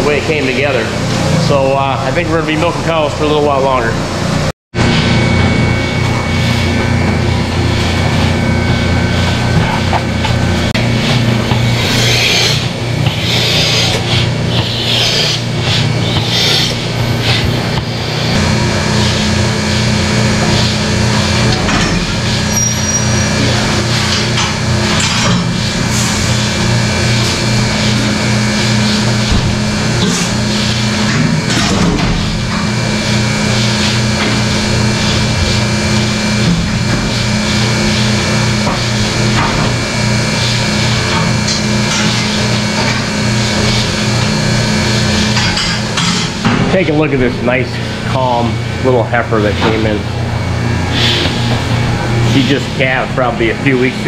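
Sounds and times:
milking machinery humming: 0:00.0 - 0:54.0.

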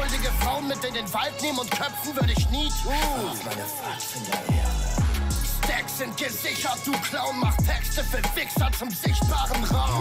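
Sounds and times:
man rapping over a beat: 0:00.0 - 0:10.0
sliding deep bass notes: 0:04.6 - 0:05.8.

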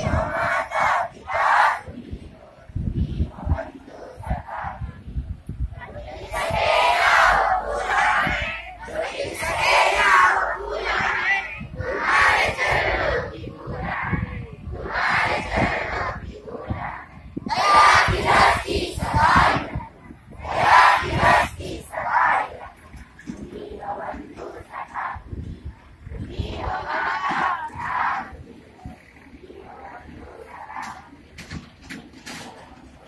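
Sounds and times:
boys chanting in unison: 0:00.0 - 0:31.4.

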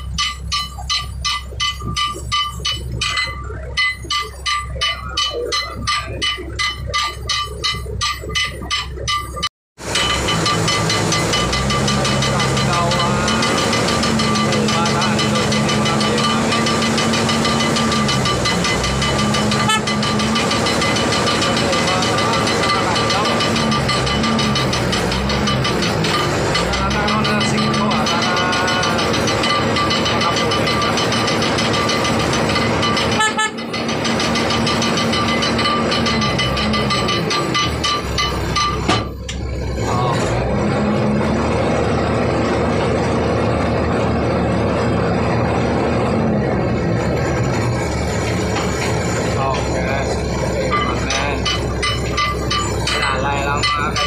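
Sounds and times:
high machine whine: 0:00.0 - 0:40.4, 0:41.8 - 0:54.0
cargo crane machine drone: 0:00.0 - 0:54.0.

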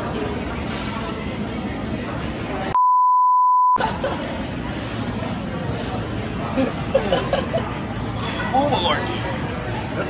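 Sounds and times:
restaurant chatter: 0:00.0 - 0:02.8, 0:03.8 - 0:10.0
censor bleep: 0:02.8 - 0:03.8.

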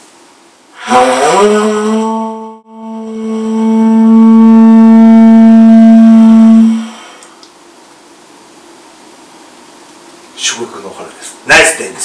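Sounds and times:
conch shell trumpet blowing: 0:00.8 - 0:07.1.

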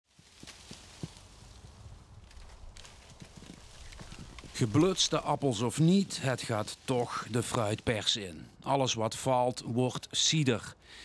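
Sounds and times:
apples thudding onto grass: 0:00.1 - 0:08.0.

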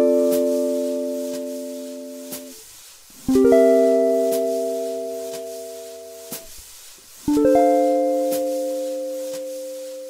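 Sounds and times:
guitar chords: 0:00.0 - 0:02.6, 0:03.3 - 0:06.5, 0:07.3 - 0:10.0
metronome click: 0:04.3 - 0:04.7, 0:07.3 - 0:09.6.

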